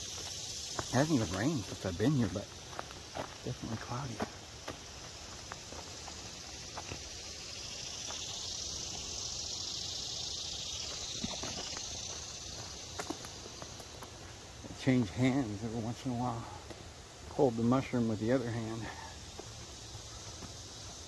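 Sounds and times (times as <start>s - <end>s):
soft footsteps on dirt: 0.0s - 9.2s, 10.6s - 21.0s
insects chorus: 0.0s - 21.0s.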